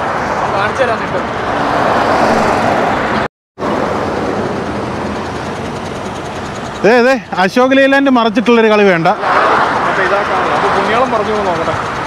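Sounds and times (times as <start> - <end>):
highway traffic passing: 0.0 - 12.0.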